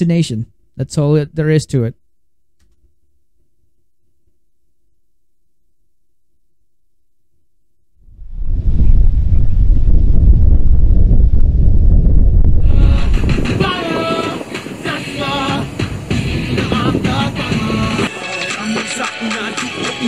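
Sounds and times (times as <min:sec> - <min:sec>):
loud deep rumble: 0:08.0 - 0:14.4
music with singing voice: 0:12.6 - 0:20.0.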